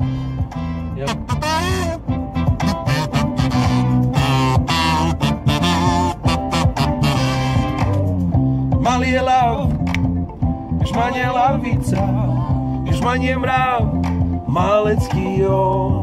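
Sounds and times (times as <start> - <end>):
song with bass and guitar: 0.0 - 16.0.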